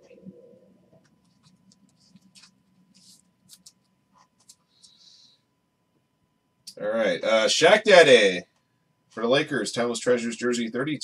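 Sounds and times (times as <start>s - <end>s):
faint steady hum: 0.0s - 11.0s
trading card handled between fingers: 1.1s - 5.0s.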